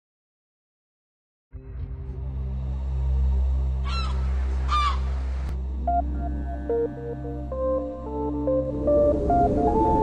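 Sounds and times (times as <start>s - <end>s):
low music drone: 1.6s - 10.0s
gull calls: 3.8s - 5.2s.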